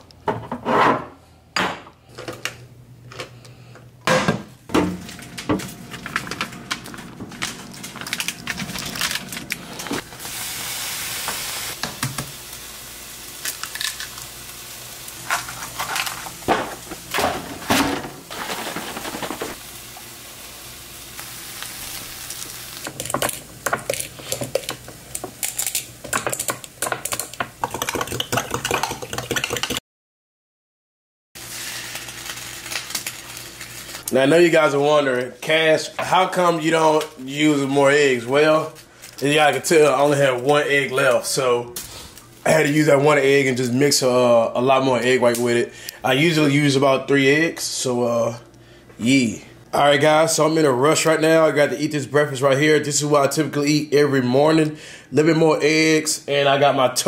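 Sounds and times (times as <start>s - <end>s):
frying pan hissing: 8.4s - 26.1s, 31.4s - 34.0s
stirring: 26.1s - 29.8s.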